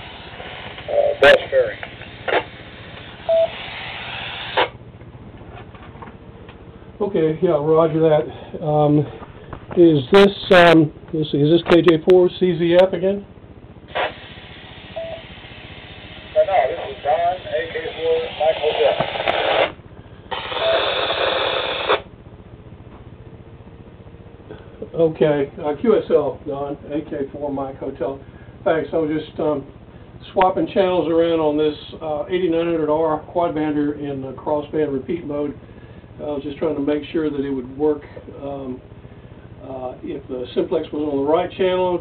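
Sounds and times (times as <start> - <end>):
faint low hum: 0.0 - 42.0
radio static hiss: 0.0 - 42.0
radio beep: 0.8 - 2.6, 3.2 - 3.7, 14.9 - 15.3, 16.3 - 22.0.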